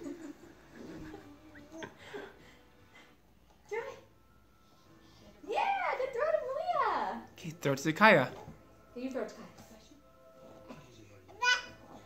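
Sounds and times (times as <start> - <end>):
baby cooing: 11.3 - 12.0.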